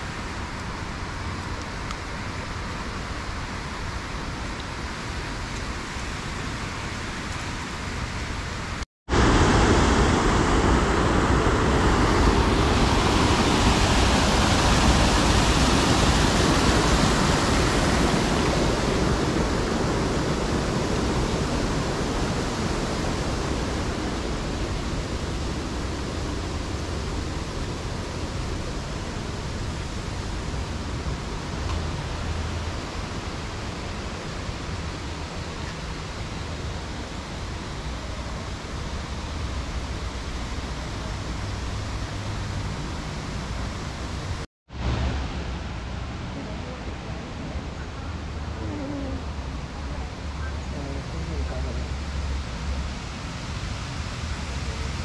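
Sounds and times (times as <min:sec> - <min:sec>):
water rushing in a cascade: 0:00.0 - 0:55.0.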